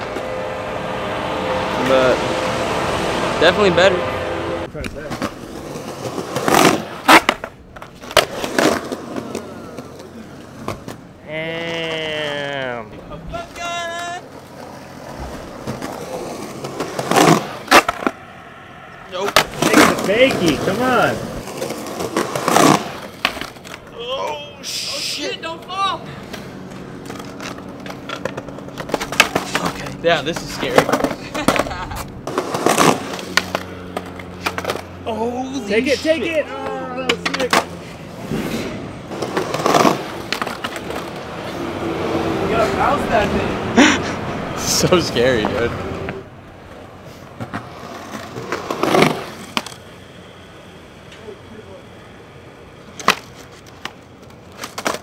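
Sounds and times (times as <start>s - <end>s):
skateboard wheels rolling on concrete: 0.0s - 55.0s
skateboard clacks: 4.8s - 11.0s, 19.2s - 24.5s, 25.6s - 35.0s, 39.1s - 41.5s, 52.9s - 55.0s
person yelling: 11.2s - 14.3s, 23.9s - 26.2s.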